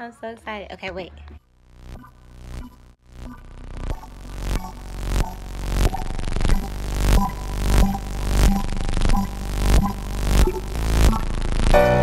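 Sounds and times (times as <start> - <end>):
electronic music with heavy bass: 1.6 - 12.0.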